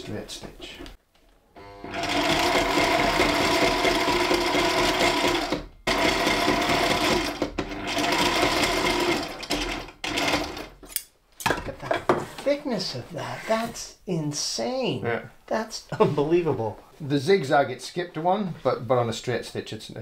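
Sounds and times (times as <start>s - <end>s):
sewing machine stitching leather: 1.9s - 10.8s.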